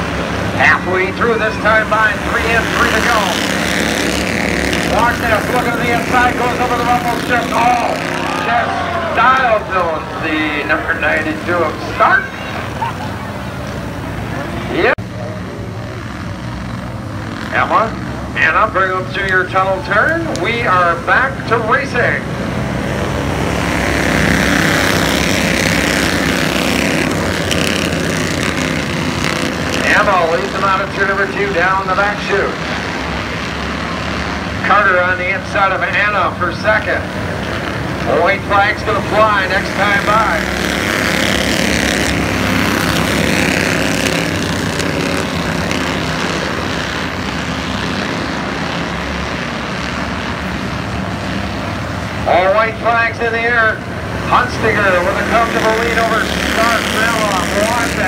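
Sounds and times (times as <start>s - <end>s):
race car engines droning: 0.0s - 58.0s.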